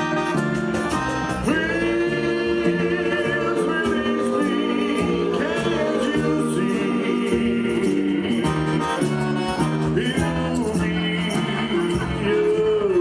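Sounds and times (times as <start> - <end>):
stepping bass line: 0.0 - 13.0
voices singing in harmony: 1.4 - 13.0.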